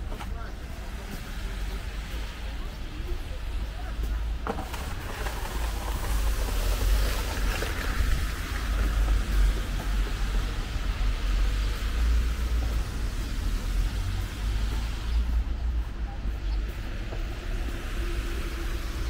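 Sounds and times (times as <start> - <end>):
tyre hiss on wet road: 0.0 - 15.8, 16.8 - 19.0
low traffic rumble: 0.0 - 19.0.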